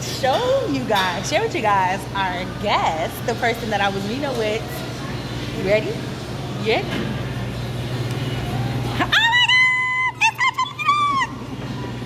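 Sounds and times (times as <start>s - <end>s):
restaurant room hum and hiss: 0.0s - 12.0s.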